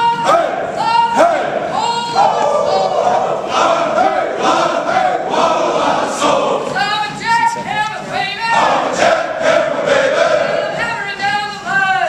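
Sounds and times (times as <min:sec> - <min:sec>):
soldiers singing together: 0:00.0 - 0:06.8, 0:08.3 - 0:11.1.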